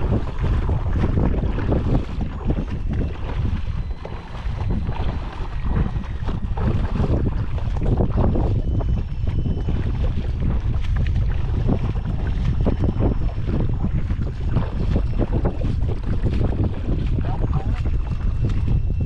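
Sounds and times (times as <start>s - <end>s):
shallow water splashing: 0.0s - 19.0s
wind buffeting microphone: 0.0s - 19.0s.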